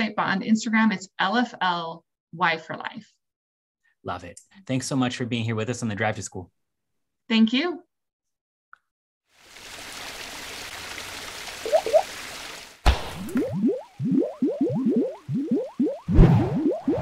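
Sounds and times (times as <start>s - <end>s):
rising bloops and splats: 11.6s - 12.2s, 12.9s - 17.0s.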